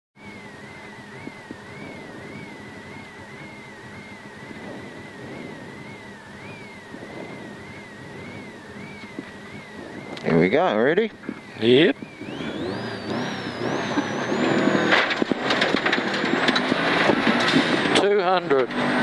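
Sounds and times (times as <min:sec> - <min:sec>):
high warbling tone: 0:00.2 - 0:18.7
car engine idling: 0:00.2 - 0:19.0.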